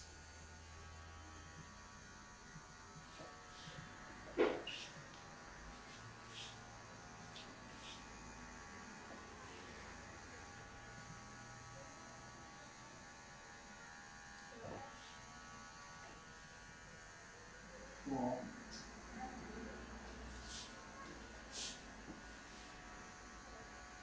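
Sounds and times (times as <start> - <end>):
electric hair clippers buzzing: 0.0 - 24.0.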